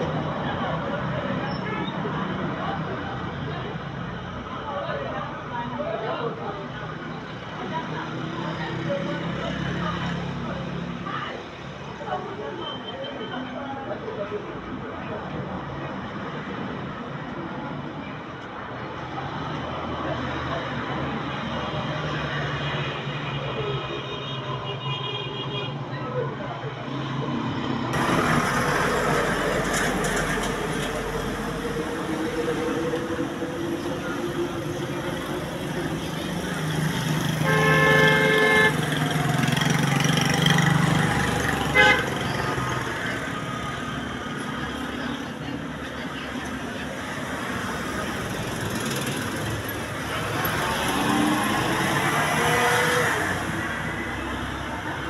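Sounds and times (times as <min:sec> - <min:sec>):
street traffic noise: 0:00.0 - 0:55.0
vehicle horn tooting: 0:37.4 - 0:38.9, 0:41.7 - 0:42.3.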